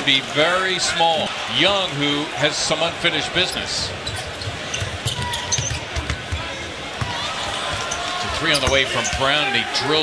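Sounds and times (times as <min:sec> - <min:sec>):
murmur of arena crowd: 0:00.0 - 0:10.0
basketball dribbling on hardwood: 0:04.9 - 0:07.1.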